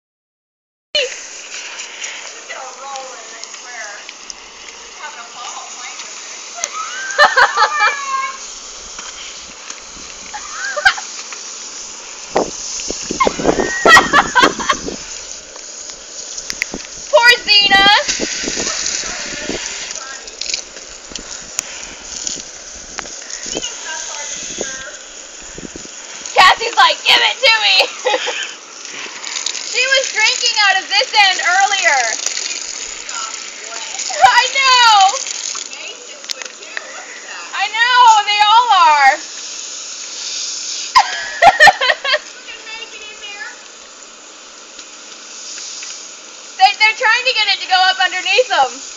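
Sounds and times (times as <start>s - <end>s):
garden hose spraying water: 1.0s - 48.9s
high-pitched squealing laughter: 6.6s - 8.4s, 10.2s - 11.2s, 13.0s - 15.0s, 27.8s - 28.6s, 40.9s - 42.3s.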